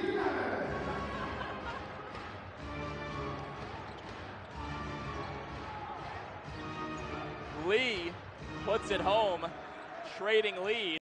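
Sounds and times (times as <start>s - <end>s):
arena music over loudspeakers: 0.0s - 11.0s.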